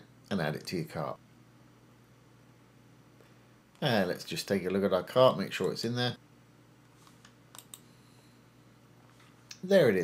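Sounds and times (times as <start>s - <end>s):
faint low hum: 0.0s - 10.0s
faint computer clicks: 7.0s - 7.9s.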